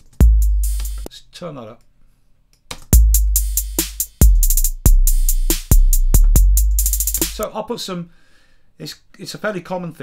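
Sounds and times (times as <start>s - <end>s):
fast closed hi-hats: 0.0s - 1.1s, 2.9s - 7.5s
booming kick drum: 3.0s - 3.6s, 4.2s - 7.4s
snare drum: 3.0s - 7.4s.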